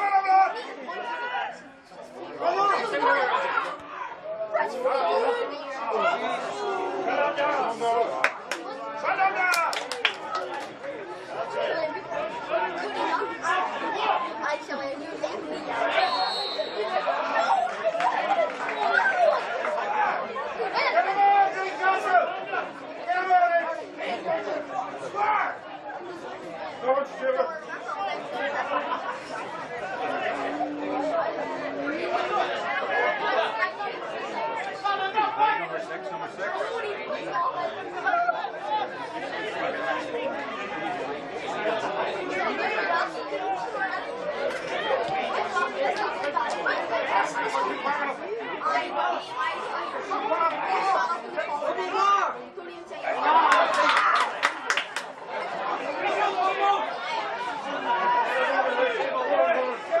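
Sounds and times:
crowd chatter and calling: 0.0 - 60.0.

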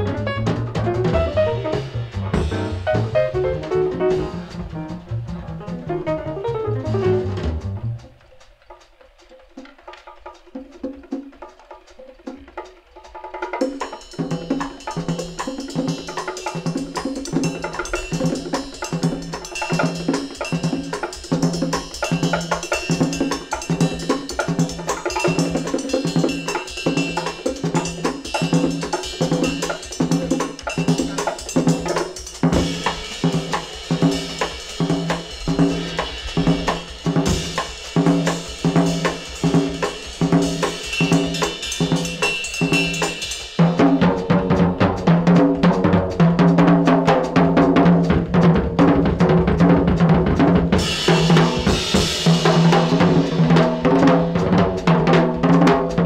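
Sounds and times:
low repeating bass figure: 0.0 - 8.1
drums and percussion: 0.0 - 56.0
small-group jazz: 0.0 - 56.0.

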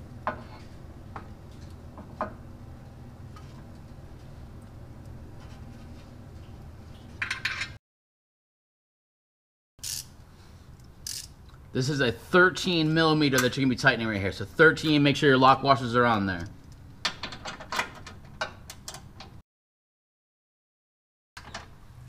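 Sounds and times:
steady low hum: 0.0 - 7.2.

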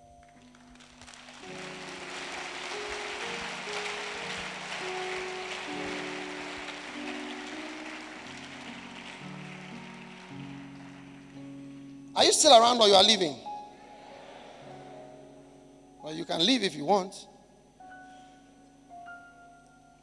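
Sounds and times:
keyboard playing slow chords: 0.0 - 20.0
crowd noise: 1.0 - 11.4.

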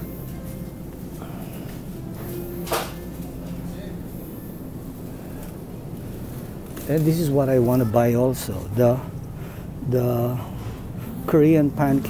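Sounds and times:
freezer humming: 0.0 - 12.0
faint voices: 1.1 - 12.0.

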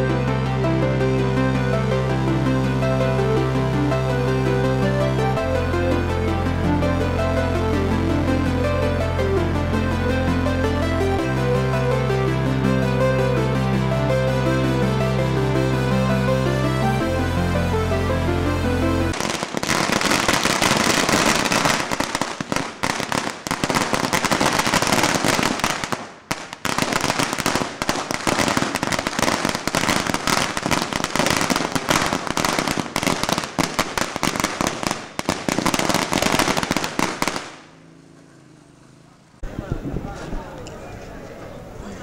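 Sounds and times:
music: 0.0 - 21.3, 28.3 - 33.8
firecrackers banging: 19.1 - 37.9.

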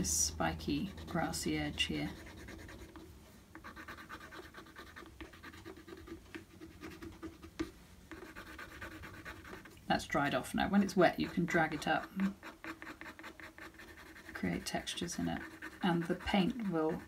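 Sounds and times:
brush handle scratching paper: 0.8 - 3.0, 3.6 - 9.8, 10.6 - 17.0.

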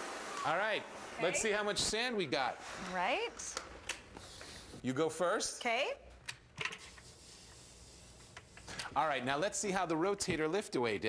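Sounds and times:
sand pouring hiss: 7.0 - 8.3.

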